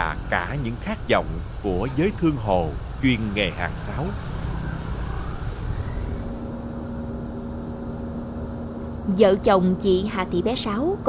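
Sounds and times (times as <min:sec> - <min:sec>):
motor rumbling: 0:00.0 - 0:11.0
steady motor hum: 0:00.0 - 0:11.0.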